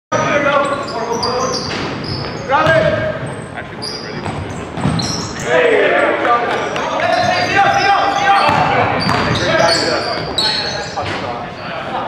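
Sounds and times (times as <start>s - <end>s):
sneakers squeaking on court: 0.2s - 11.4s
basketball bouncing: 1.7s - 3.3s, 4.2s - 5.2s, 8.4s - 9.4s
players shouting: 5.3s - 10.9s.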